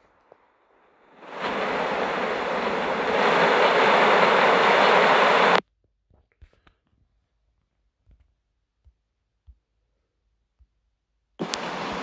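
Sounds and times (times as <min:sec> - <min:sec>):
loud hissing noise: 0:01.0 - 0:05.6, 0:11.4 - 0:12.0
faint clicks: 0:11.4 - 0:12.0.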